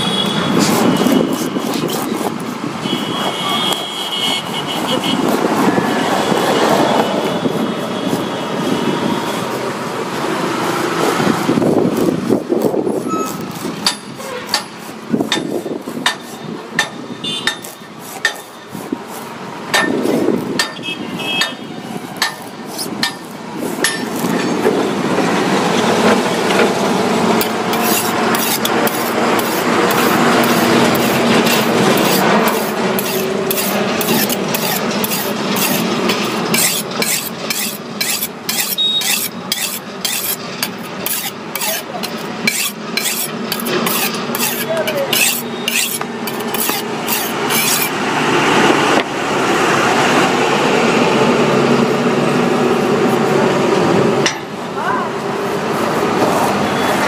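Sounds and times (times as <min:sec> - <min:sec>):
knife blade scraping on stone: 0:00.5 - 0:02.6, 0:11.0 - 0:20.8, 0:22.1 - 0:24.6, 0:27.4 - 0:48.0.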